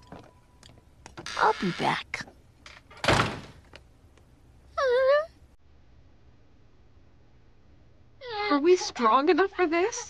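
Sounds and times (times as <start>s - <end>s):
door slamming shut: 2.9s - 3.6s.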